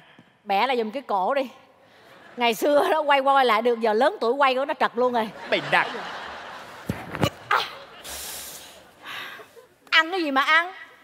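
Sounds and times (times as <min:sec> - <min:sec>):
brief hiss: 0:08.0 - 0:08.8.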